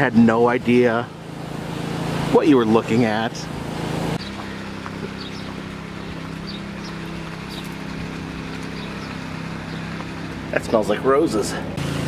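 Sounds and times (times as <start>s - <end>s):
motor running with low hum: 0.7s - 10.7s.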